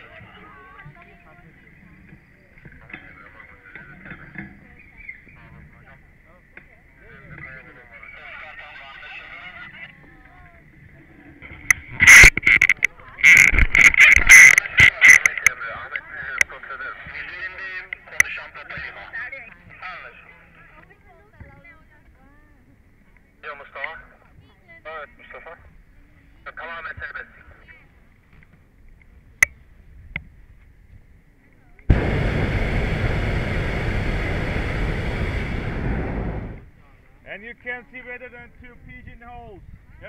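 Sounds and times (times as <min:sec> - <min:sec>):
propane burner blasts: 0:31.9 - 0:36.8.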